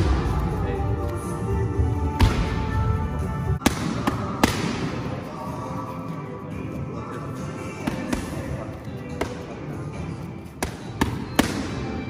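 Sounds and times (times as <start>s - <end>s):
background music: 0.0s - 12.0s
boxing gloves smacking mitts: 10.6s - 11.8s.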